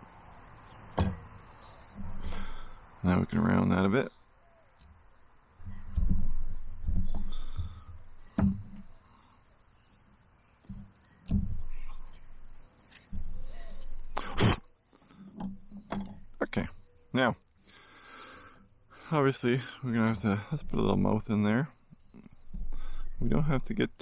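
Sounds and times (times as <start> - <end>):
low thumps of handling: 5.6 - 9.0.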